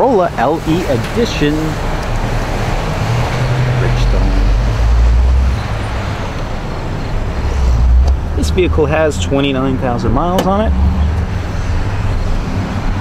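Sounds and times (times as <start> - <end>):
road traffic passing: 0.0 - 13.0.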